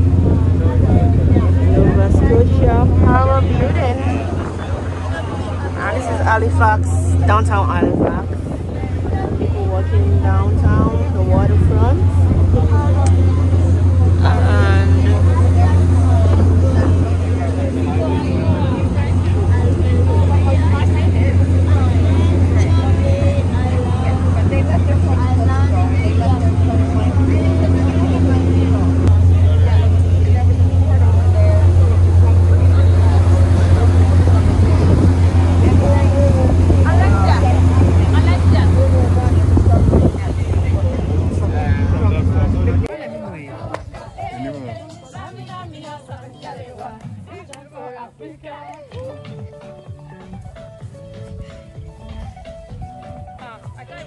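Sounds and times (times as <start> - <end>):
boat engine droning: 0.0 - 49.2
people talking: 0.0 - 54.0.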